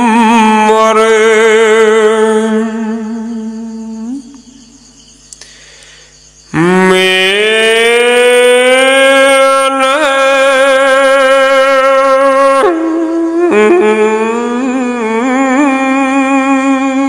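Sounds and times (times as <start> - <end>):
solo voice chanting: 0.0 - 4.8, 5.4 - 17.0.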